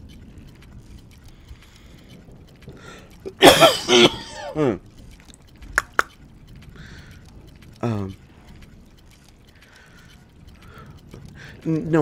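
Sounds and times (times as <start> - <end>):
mechanical clicking and whirring: 0.0 - 12.0.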